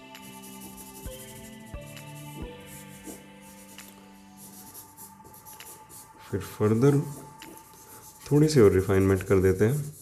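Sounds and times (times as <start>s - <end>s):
pencil scratching on paper: 0.2s - 10.0s.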